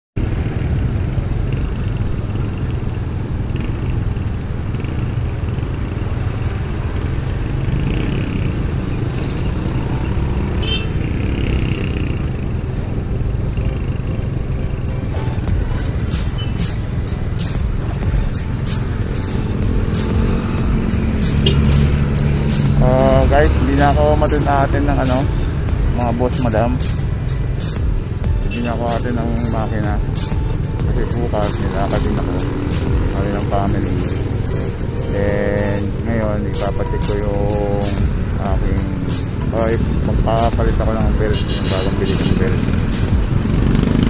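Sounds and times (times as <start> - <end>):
passing street traffic: 0.2 - 44.0
music with quick beat: 15.1 - 35.9, 36.6 - 44.0
man talking: 22.8 - 25.3, 25.9 - 26.9, 28.5 - 30.0, 30.8 - 34.2, 35.1 - 42.7.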